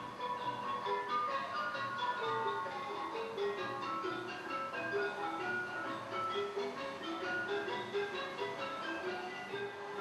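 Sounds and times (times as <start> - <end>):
tinkling bell-like melody: 0.0 - 10.0.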